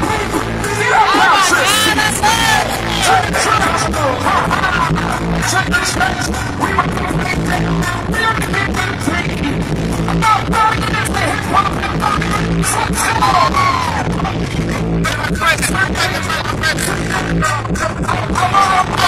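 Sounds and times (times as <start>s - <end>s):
hip-hop music over pa system: 0.0s - 19.0s
vocals over beat: 0.0s - 19.0s.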